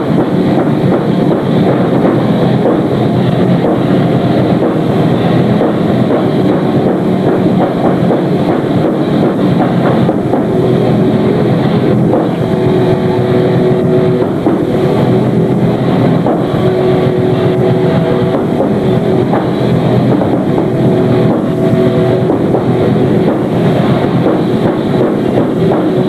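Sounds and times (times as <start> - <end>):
held guitar note ringing: 0.0 - 26.0.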